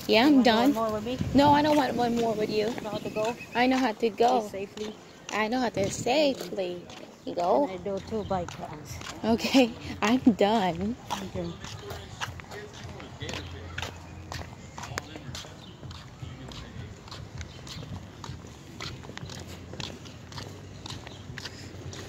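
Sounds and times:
footsteps on concrete: 0.0 - 22.0.

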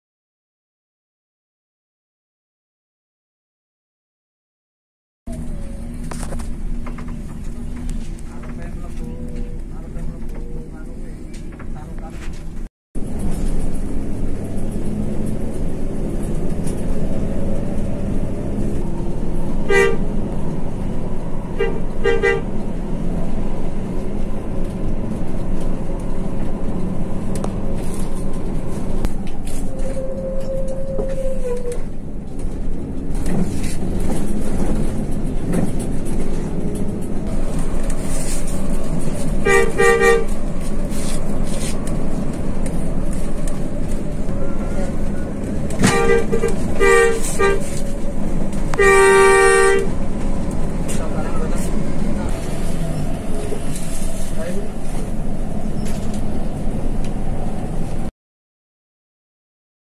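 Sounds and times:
bus engine and road noise: 5.3 - 58.1
single-note horn: 19.7 - 20.0, 39.4 - 40.4, 48.7 - 49.9.

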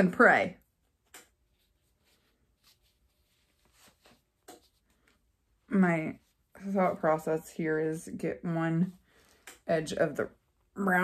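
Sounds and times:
faint handling sounds: 0.7 - 7.3.

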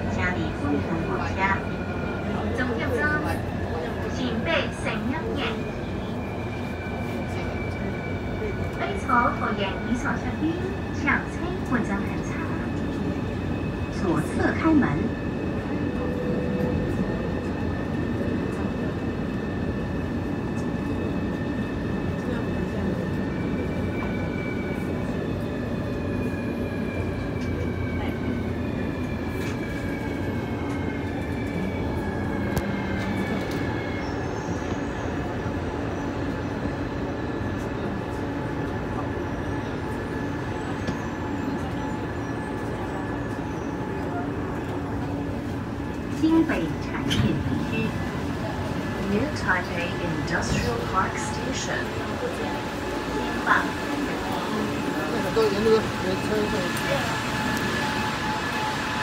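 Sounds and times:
train running rumble: 0.0 - 59.0.

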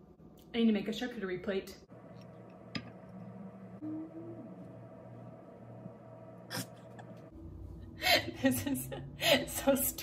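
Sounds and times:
faint steady hum: 1.8 - 10.0
brief low hum: 2.0 - 7.8.

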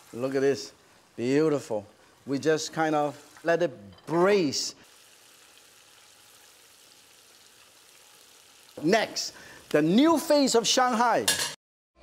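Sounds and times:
meatballs simmering in broth: 4.8 - 9.9.

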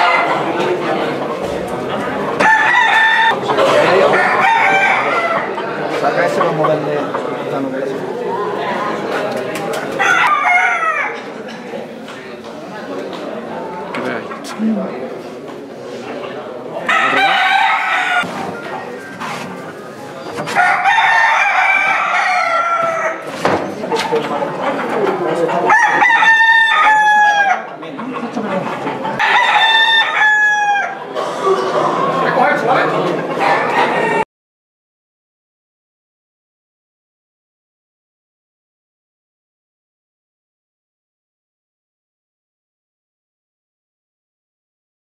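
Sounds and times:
rooster crowing: 2.4 - 3.4, 4.0 - 5.6, 10.0 - 11.2, 16.9 - 18.3, 20.6 - 23.2, 25.7 - 27.7, 29.2 - 31.0, 33.7 - 34.2.

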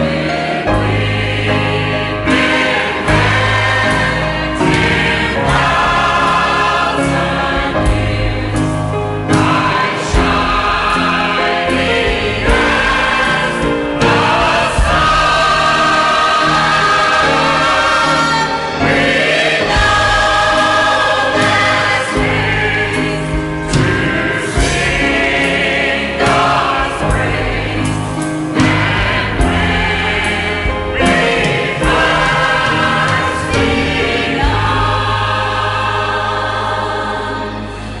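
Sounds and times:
church choir singing: 0.0 - 38.0.

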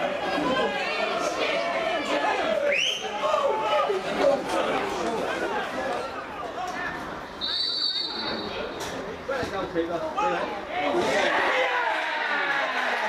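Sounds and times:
people chattering and calling out: 0.0 - 13.0
referee's whistle: 2.7 - 3.1, 7.4 - 8.7.

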